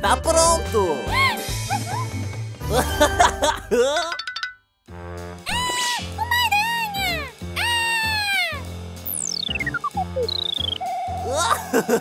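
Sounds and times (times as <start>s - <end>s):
light background music: 0.0s - 4.0s, 4.9s - 12.0s.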